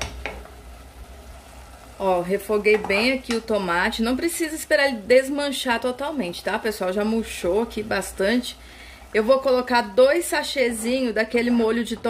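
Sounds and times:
faint sizzling: 0.0 - 12.0.

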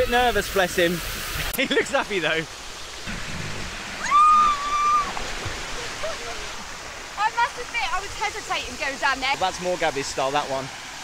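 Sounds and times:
splashing pool fountains: 0.0 - 11.0
child squealing: 4.0 - 5.2.

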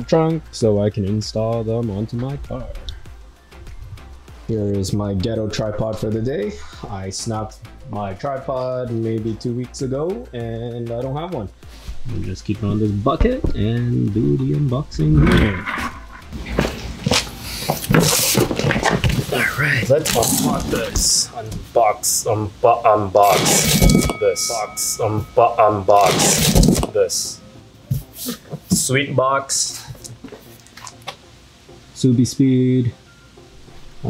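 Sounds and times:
footsteps on concrete floor: 15.8 - 19.6, 29.8 - 31.2
hands handling cardboard box: 16.4 - 21.1, 26.0 - 27.0.

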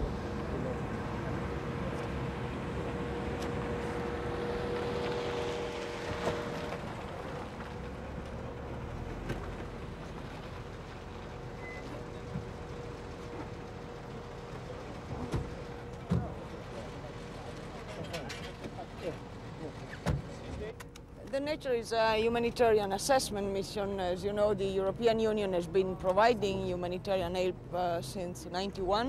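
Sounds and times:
vehicle hum: 0.0 - 29.0.

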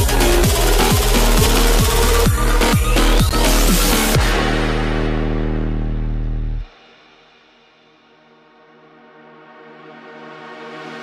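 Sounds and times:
low synth note: 0.0 - 6.7.

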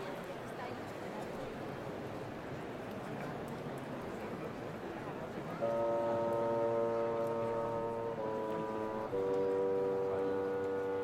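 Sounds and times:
wind band playing chords: 5.6 - 11.0.

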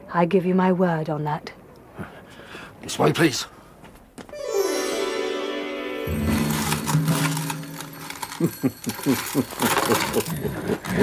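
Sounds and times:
held low musical chord: 4.3 - 8.9.

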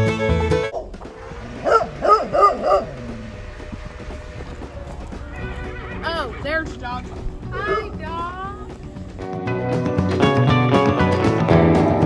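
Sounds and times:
dog barking: 1.6 - 3.0.

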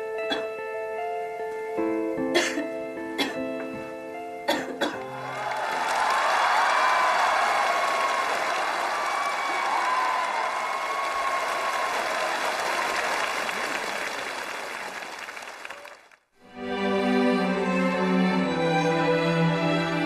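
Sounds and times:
music: 0.0 - 6.3, 16.4 - 20.0
audience applauding and cheering: 5.0 - 16.3.

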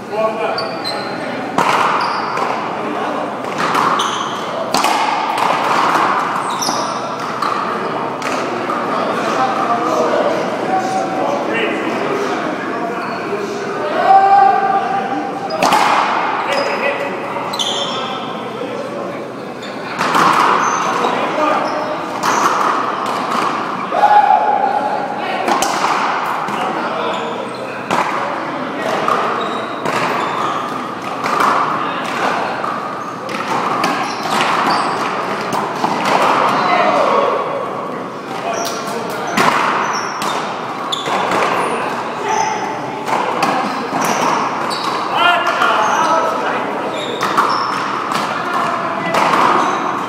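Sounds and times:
players' voices: 0.0 - 50.0
ball striking wall and floor: 1.5 - 2.7, 3.4 - 8.9, 15.5 - 16.6, 19.9 - 21.1, 25.4 - 26.8, 27.8 - 30.4, 31.0 - 37.0, 39.2 - 41.7, 47.1 - 50.0
racquets hitting ball: 1.5 - 2.7, 3.4 - 8.9, 15.5 - 16.6, 19.9 - 21.2, 22.1 - 23.8, 25.4 - 26.8, 27.8 - 37.0, 39.1 - 41.7, 43.0 - 46.0, 47.0 - 50.0.

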